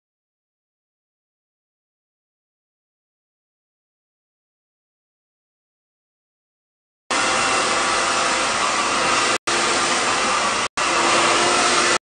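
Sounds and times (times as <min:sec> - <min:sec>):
hair dryer blowing: 0:07.1 - 0:12.0.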